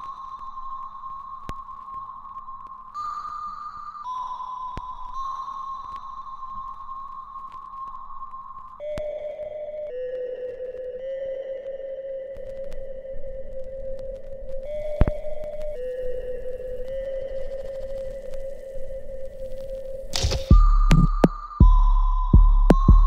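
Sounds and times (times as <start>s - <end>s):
held synth tone: 14.6s - 23.0s.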